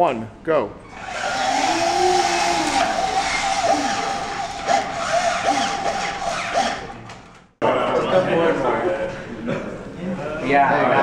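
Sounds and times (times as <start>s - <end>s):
electric motors whining: 0.9s - 7.5s.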